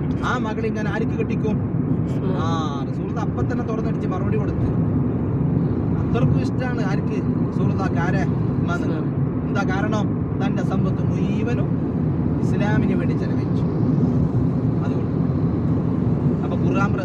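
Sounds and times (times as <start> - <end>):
people talking: 0.0 - 4.7, 6.0 - 11.7, 12.4 - 13.6, 14.8 - 15.0, 16.4 - 17.0
car cabin road and engine rumble: 0.0 - 17.0.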